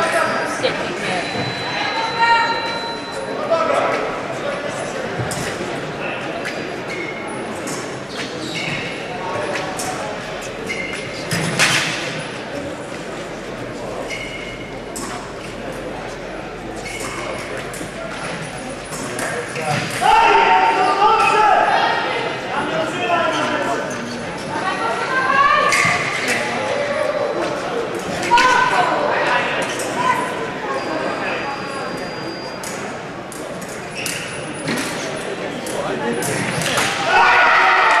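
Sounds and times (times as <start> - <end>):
murmur of voices: 0.0 - 38.0
shoe squeaks: 0.1 - 3.4, 6.4 - 11.7, 13.9 - 15.6, 16.4 - 19.9, 29.6 - 33.0, 33.8 - 35.3.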